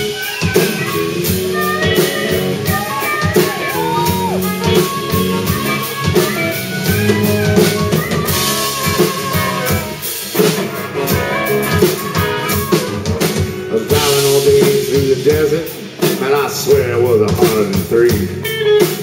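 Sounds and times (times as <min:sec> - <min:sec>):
harmonica lead with bending notes: 0:00.0 - 0:15.6
bass guitar: 0:00.0 - 0:19.0
drum kit: 0:00.0 - 0:19.0
electric and acoustic guitars: 0:00.0 - 0:19.0.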